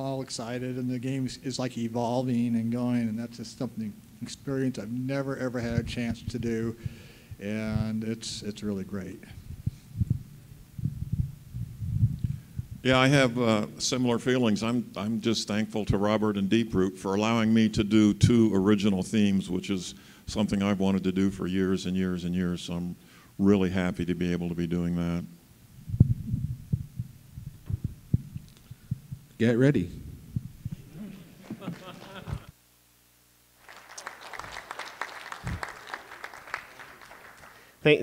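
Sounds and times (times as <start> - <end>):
man speaking into microphone: 0.0 - 9.4, 29.4 - 30.1
microphone handling thumps: 5.6 - 8.0, 9.3 - 12.9, 25.7 - 32.5.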